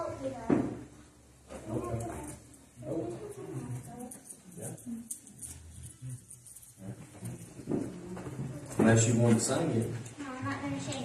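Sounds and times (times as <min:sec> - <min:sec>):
people talking quietly: 0:01.5 - 0:11.0.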